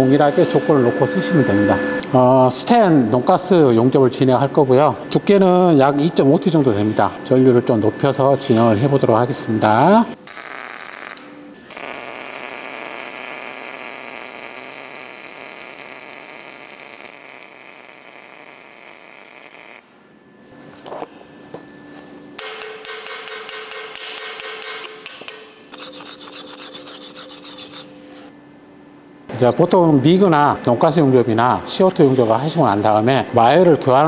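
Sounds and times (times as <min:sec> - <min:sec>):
welding arc hissing: 0:10.2 - 0:19.9.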